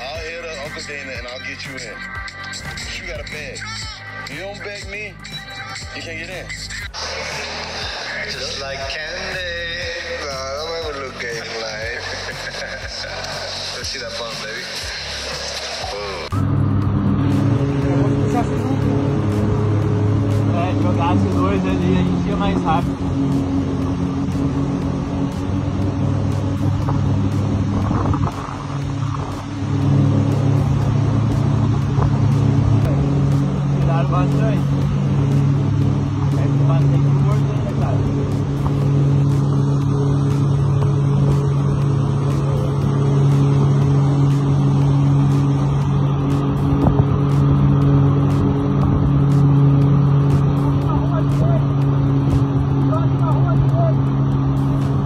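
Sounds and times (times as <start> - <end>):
outboard motor running: 0.0 - 55.0
water rushing along hull: 6.9 - 55.0.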